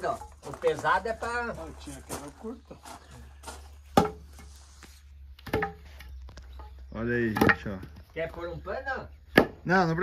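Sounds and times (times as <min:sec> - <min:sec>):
wooden flail knocking: 0:05.4 - 0:08.0.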